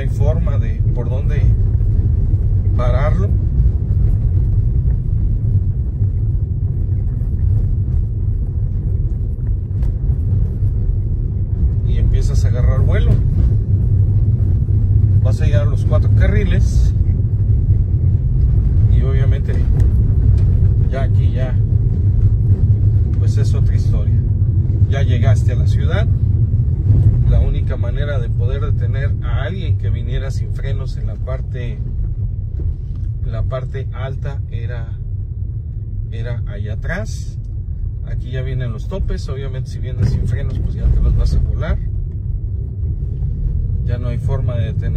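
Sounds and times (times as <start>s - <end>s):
man talking: 0.0s - 1.6s, 2.7s - 3.4s, 11.8s - 13.3s, 15.2s - 17.1s, 18.8s - 19.8s, 20.8s - 21.7s, 23.1s - 24.2s, 24.8s - 26.1s, 27.2s - 31.9s, 33.2s - 35.0s, 36.1s - 37.4s, 38.0s - 41.9s, 43.8s - 44.9s
car rumbling on rough road: 0.0s - 44.9s.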